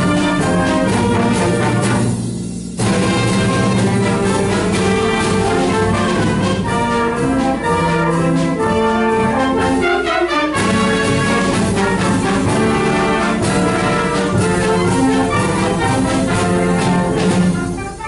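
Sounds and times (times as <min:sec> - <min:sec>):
trumpets and trombones: 0:00.0 - 0:18.0
wind band playing: 0:00.0 - 0:18.0.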